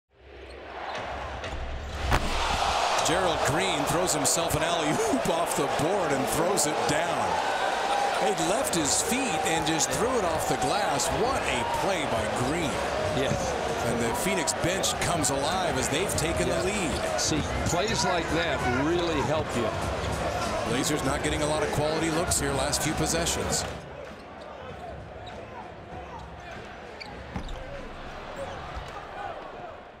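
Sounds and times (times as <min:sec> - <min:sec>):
crowd murmur: 0:03.2 - 0:10.6.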